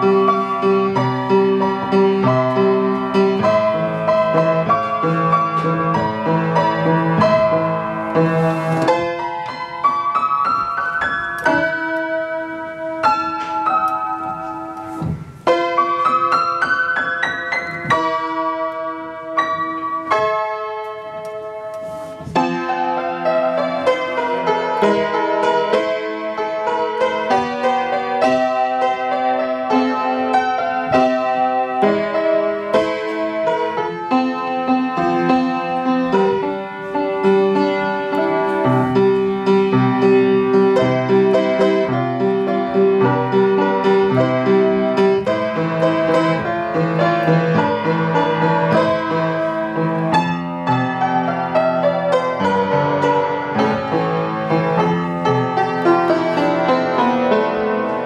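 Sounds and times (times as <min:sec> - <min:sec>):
solo piano: 0:00.0 - 0:58.0.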